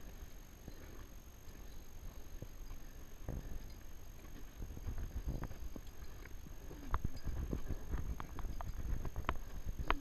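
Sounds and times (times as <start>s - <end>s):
footsteps on dirt trail: 0.0s - 10.0s
low wind rumble: 0.0s - 10.0s.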